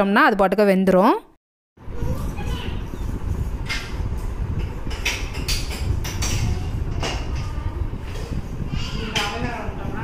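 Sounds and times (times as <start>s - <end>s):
low rumbling noise: 1.8s - 10.0s.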